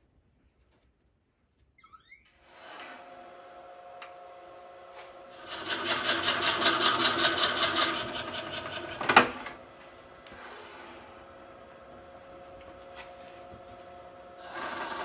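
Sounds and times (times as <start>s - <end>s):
wood lathe humming and whining: 2.6s - 9.4s, 13.3s - 15.0s
drill bit boring into wood: 14.4s - 15.0s.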